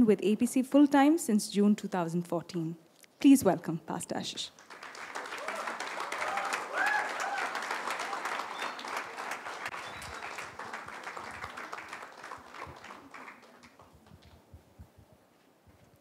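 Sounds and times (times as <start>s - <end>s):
audience applauding: 4.6s - 14.1s.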